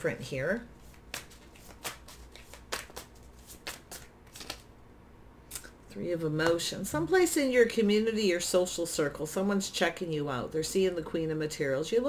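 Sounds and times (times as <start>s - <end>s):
cards being shuffled: 0.8s - 4.7s.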